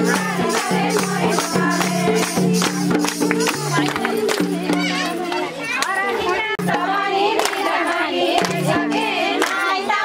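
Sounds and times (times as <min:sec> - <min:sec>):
sharp percussion strokes: 0:00.0 - 0:05.7
handclaps: 0:00.0 - 0:06.8, 0:07.4 - 0:09.8
crowd of women's voices: 0:00.0 - 0:10.0
folk dance music: 0:00.0 - 0:10.0.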